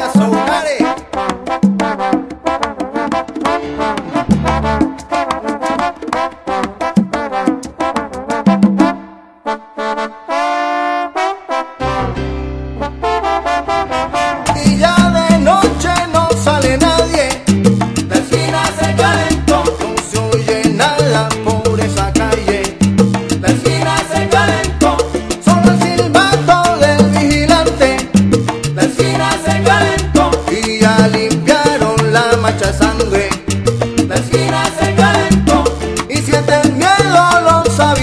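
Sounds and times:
bass line: 0.0 - 0.8, 3.5 - 5.2, 11.8 - 38.0
salsa orchestra instrumental: 0.0 - 38.0
steady percussion: 13.9 - 38.0.

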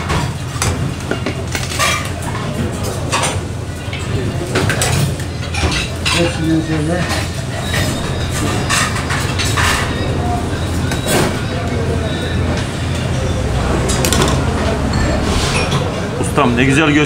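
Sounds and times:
metal spoons clinking on trays: 1.1 - 11.7.

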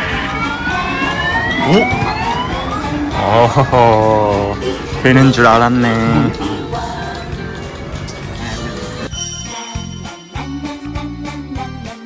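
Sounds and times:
in-store background music: 0.0 - 12.0.

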